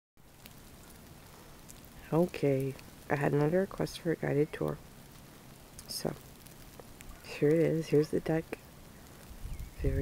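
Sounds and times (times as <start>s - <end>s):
heavy snow falling hiss: 0.2s - 10.0s
light ticks: 0.4s - 1.9s, 4.6s - 7.6s.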